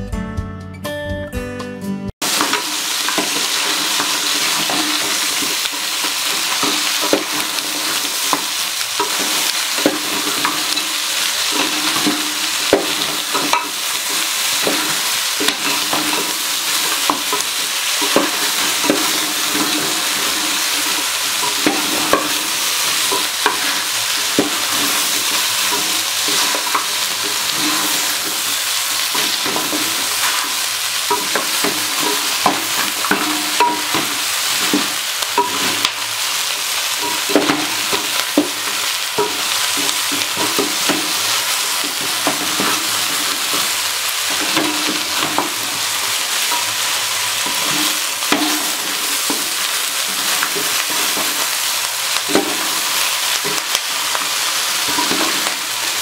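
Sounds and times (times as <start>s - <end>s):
meat and onions sizzling: 2.2s - 56.0s
wooden spoon scraping a pot: 2.3s - 35.9s, 37.0s - 51.6s.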